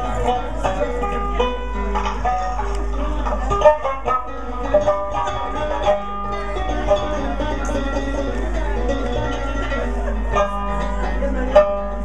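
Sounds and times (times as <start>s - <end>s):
plucked string music: 0.0s - 12.0s.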